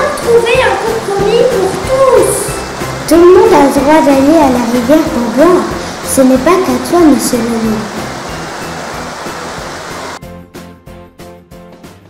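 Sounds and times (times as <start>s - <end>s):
stream water rushing: 0.0s - 10.2s
background music with steady beat: 0.0s - 12.0s.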